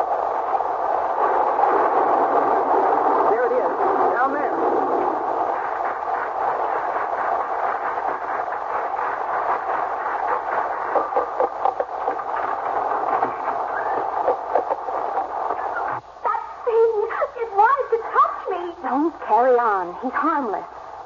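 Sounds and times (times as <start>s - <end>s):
rain and wind rushing: 0.0s - 21.0s.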